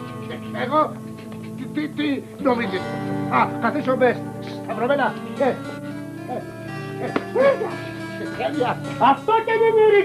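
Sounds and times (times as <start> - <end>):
background film music: 0.0 - 10.0.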